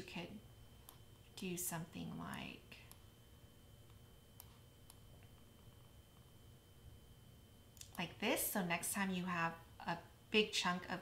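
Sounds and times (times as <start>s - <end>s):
faint high-pitched whine: 0.0s - 11.0s
computer mouse clicks: 0.8s - 1.0s, 3.9s - 5.4s.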